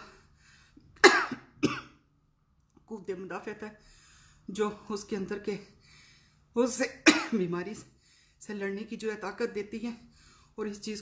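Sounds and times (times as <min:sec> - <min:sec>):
woman coughing: 0:01.0 - 0:02.0, 0:07.0 - 0:07.6.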